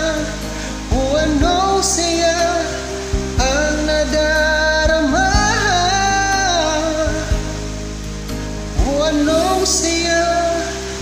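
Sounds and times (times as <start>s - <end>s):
person singing: 0.0s - 7.7s, 8.7s - 11.0s
karaoke ballad backing track: 0.0s - 11.0s.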